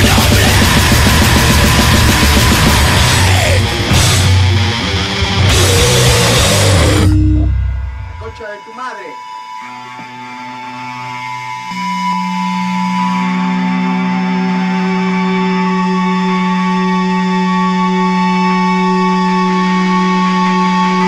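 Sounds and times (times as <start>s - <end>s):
droning electric guitar: 0.0s - 21.0s.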